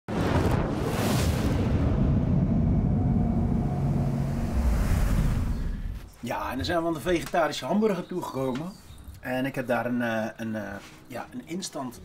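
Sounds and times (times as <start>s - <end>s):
deep fiery rumble: 0.1s - 6.1s
low drone tone: 1.8s - 6.1s.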